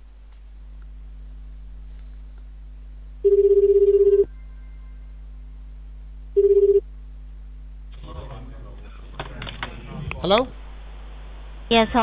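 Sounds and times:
phone ringback tone: 3.2 - 5.0, 6.4 - 6.8.

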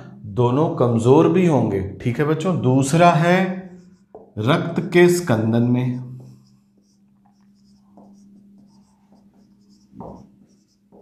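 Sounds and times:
steady low hum: 0.0 - 11.0
marker pen writing on whiteboard: 3.6 - 4.4, 5.0 - 11.0.

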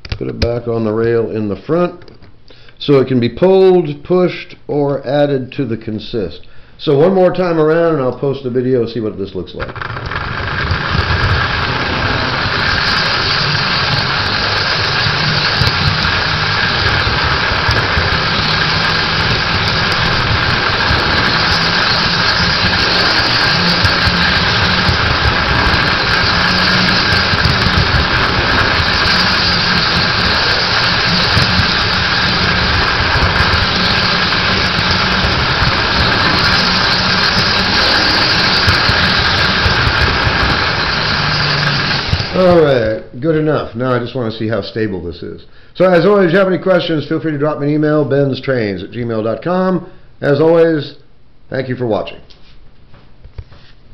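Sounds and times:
high motor whine: 9.6 - 43.1
train wheels rumbling on rails: 9.8 - 42.7.

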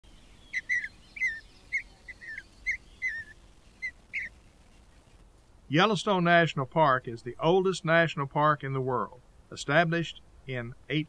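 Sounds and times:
bird chirping: 0.0 - 5.2.

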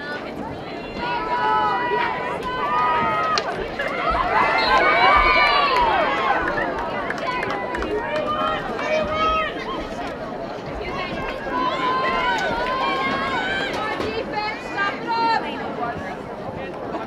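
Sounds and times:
people calling and shouting: 0.0 - 17.0.

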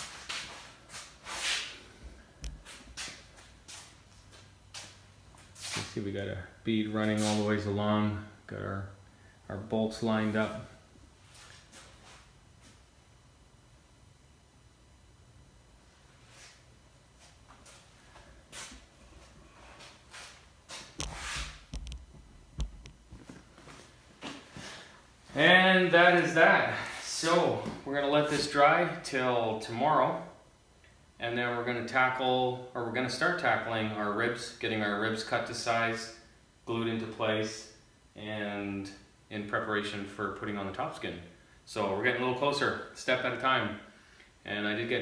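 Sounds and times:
knocks and thumps: 21.7 - 23.3.

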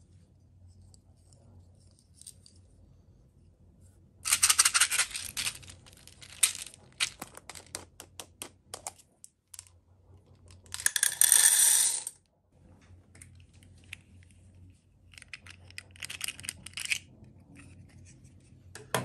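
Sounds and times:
beads poured into metal tin: 4.3 - 7.6, 10.7 - 12.1
beads rattling in glass jar: 4.3 - 7.8, 10.6 - 12.1.

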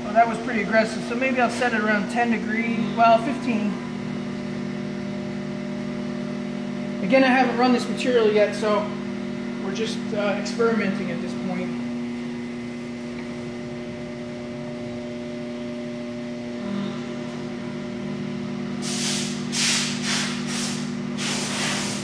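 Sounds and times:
steady machine hum: 0.0 - 22.0
short loud hissing bursts: 18.8 - 22.0.

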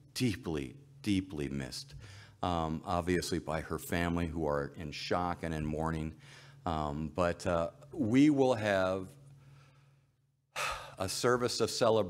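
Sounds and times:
man breathing close to microphone: 2.0 - 2.4, 6.2 - 6.6.

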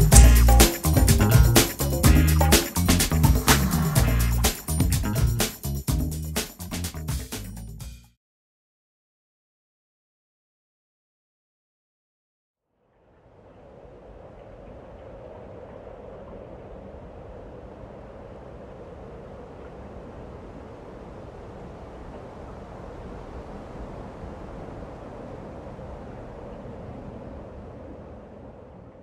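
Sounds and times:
low rumble: 0.0 - 5.4
wind rushing through trees: 12.9 - 29.0.

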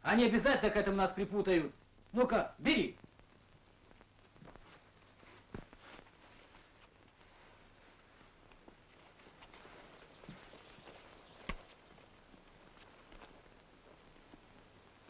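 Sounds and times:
footsteps scuffling on dirt: 4.3 - 14.4
body dragging on dirt: 4.3 - 15.0.

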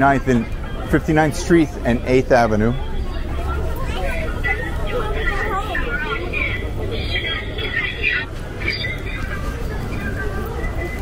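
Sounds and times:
low rumble of traffic: 0.0 - 11.0
passersby talking: 0.0 - 11.0.

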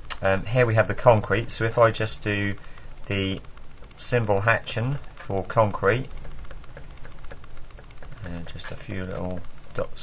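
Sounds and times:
pencil tapping and scratching on paper: 5.6 - 9.5.

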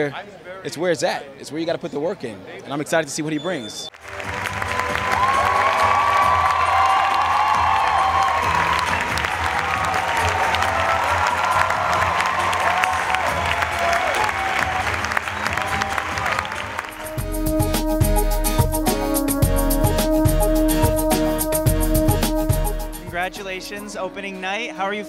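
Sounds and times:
audience whooping and whistling: 3.8 - 17.2
audience clapping: 3.9 - 18.0.

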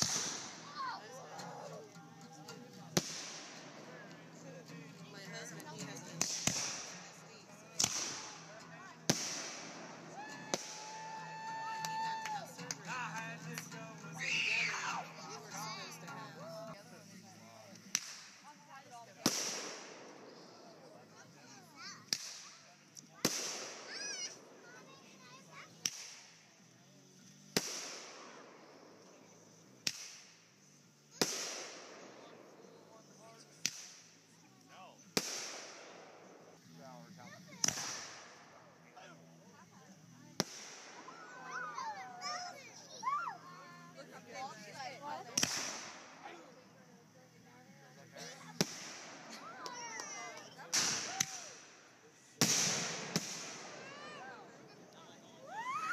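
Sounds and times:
firework sharp crack: 0.0 - 0.8, 2.8 - 4.8, 5.5 - 13.8, 17.7 - 21.2, 21.8 - 26.5, 27.5 - 29.0, 29.8 - 32.5, 33.5 - 34.2, 35.1 - 36.7, 37.5 - 38.7, 40.4 - 42.7, 45.3 - 46.4, 48.2 - 54.3
firework loud bang: 52.4 - 53.7.

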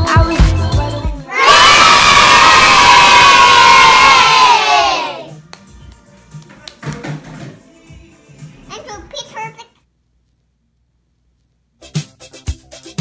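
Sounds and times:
upbeat music with a beat: 0.0 - 1.3, 5.2 - 8.9, 11.8 - 13.0
children cheering and shouting: 1.3 - 5.4.

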